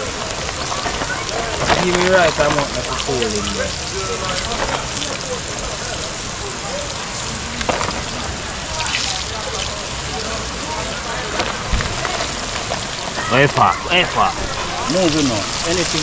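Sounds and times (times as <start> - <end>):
chicken frying in hot oil: 0.0 - 16.0.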